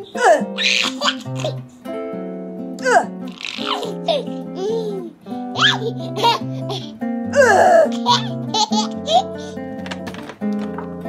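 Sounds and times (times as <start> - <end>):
baby laughing: 0.2 - 1.7, 3.3 - 9.6.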